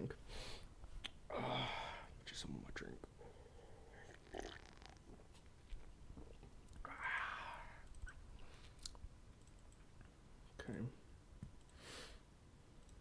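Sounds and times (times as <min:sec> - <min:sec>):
person sipping and swallowing: 0:03.8 - 0:05.2.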